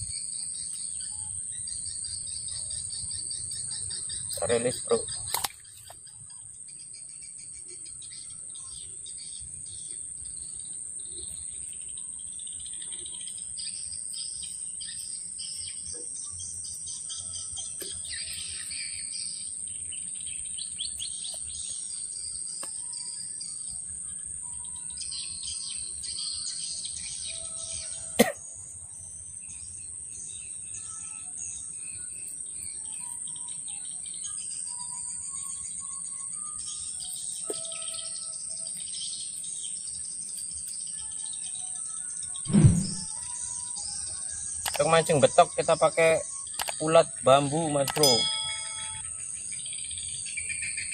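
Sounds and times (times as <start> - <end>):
high insect drone: 0.0 - 42.4, 43.0 - 50.9
birds chirping and calling: 0.6 - 6.2, 44.7 - 50.9
sharp click: 44.7 - 44.9, 46.6 - 46.8, 47.8 - 48.2.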